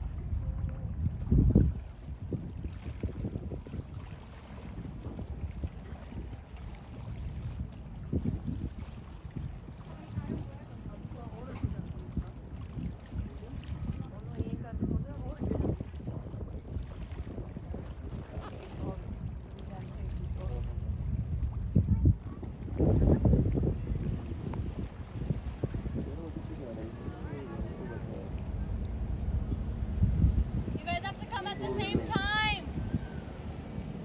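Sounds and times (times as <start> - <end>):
wind buffeting microphone: 0.0 - 34.0
faint indistinct voices: 9.7 - 30.0.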